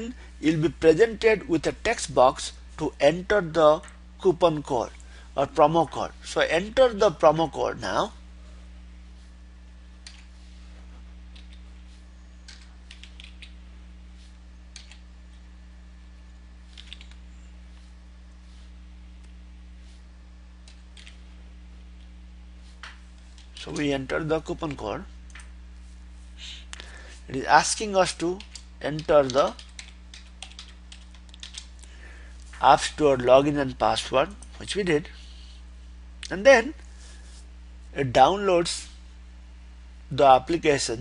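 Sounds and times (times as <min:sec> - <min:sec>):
steady low hum: 0:00.0 - 0:41.0
keyboard typing: 0:11.3 - 0:11.6, 0:12.5 - 0:13.6, 0:14.7 - 0:15.0, 0:16.7 - 0:17.2, 0:20.6 - 0:21.2, 0:28.1 - 0:31.7
keyboard keystroke clicks: 0:12.5 - 0:13.6, 0:14.7 - 0:15.0, 0:16.7 - 0:17.2.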